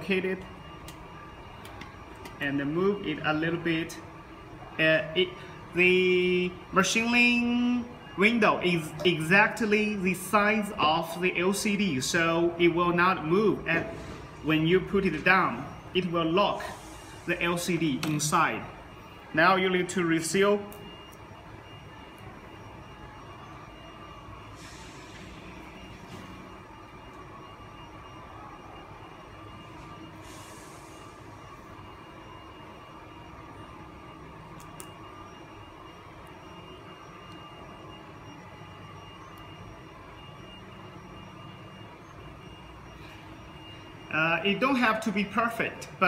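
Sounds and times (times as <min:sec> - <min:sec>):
workshop hall hum: 0:00.0 - 0:46.0.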